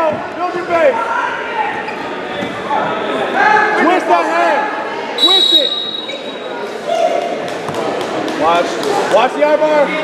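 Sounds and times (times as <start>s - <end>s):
voices shouting in a gym: 0.0s - 7.6s.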